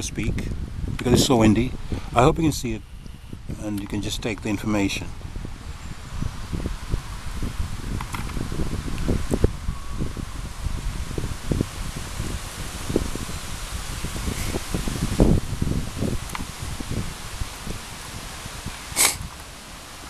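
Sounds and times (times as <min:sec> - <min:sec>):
strong wind buffeting microphone: 0:00.0 - 0:20.0.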